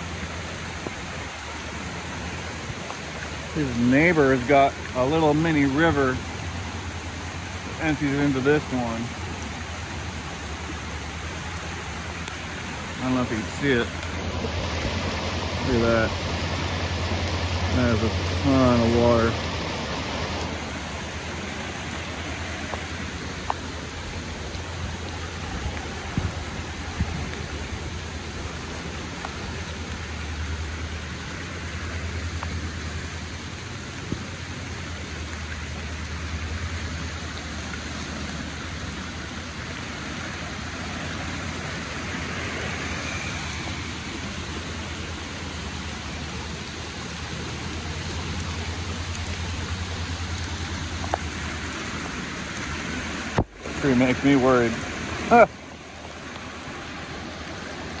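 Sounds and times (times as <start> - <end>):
creek rushing: 0.0 - 58.0
rain falling: 0.0 - 58.0.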